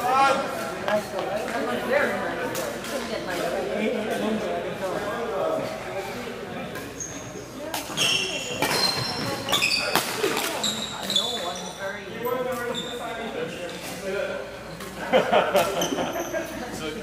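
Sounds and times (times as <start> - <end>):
sneakers squeaking on wooden floor: 6.8 - 13.4.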